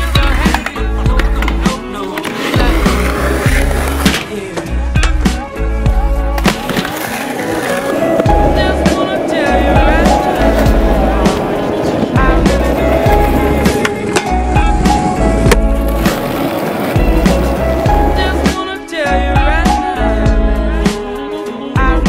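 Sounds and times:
skateboard clacks: 0.0 - 5.4, 6.4 - 18.6
skateboard wheels rolling on concrete: 0.0 - 22.0.

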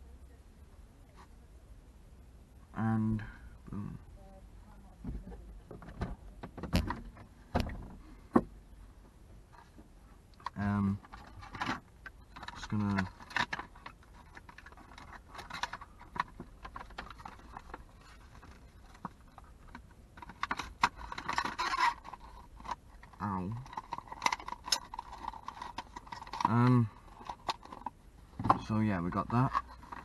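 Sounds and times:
plastic packaging clicking and crinkling: 10.4 - 30.0.

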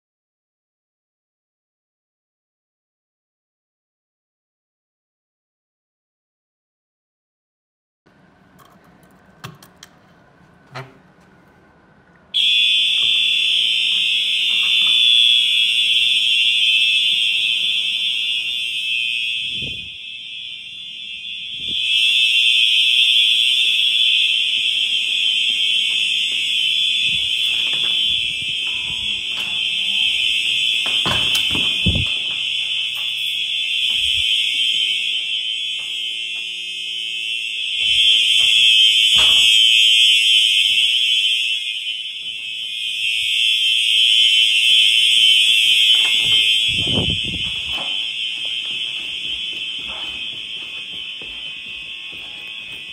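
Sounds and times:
fire alarm horns high-pitched tone: 12.3 - 52.9.

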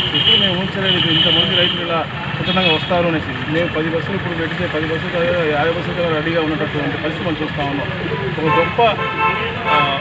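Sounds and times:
man talking: 0.0 - 10.0
street traffic: 0.0 - 10.0.

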